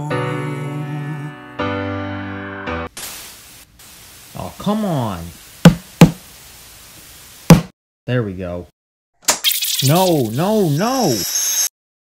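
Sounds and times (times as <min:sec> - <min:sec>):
tv static hiss: 0:03.0 - 0:07.5, 0:09.6 - 0:11.7
sharp loud knocks: 0:05.7 - 0:06.2, 0:07.5 - 0:07.7
person speaking: 0:09.8 - 0:11.2.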